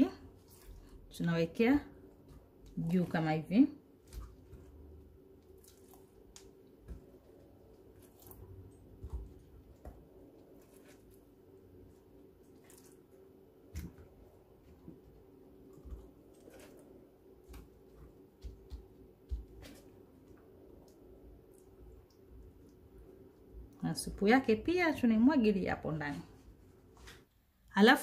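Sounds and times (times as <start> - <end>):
low steady hum: 0.0 - 28.0
wet squishes of fish pieces: 0.3 - 1.1, 2.0 - 14.7.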